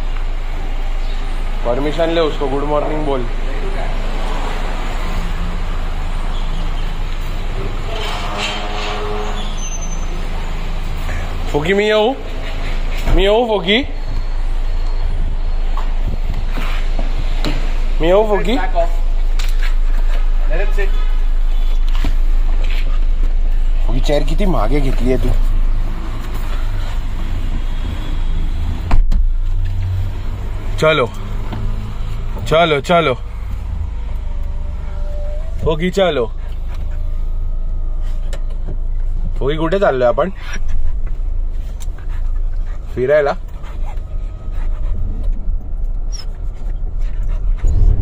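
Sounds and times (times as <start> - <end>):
car engine rumble inside cabin: 40.6 - 48.0.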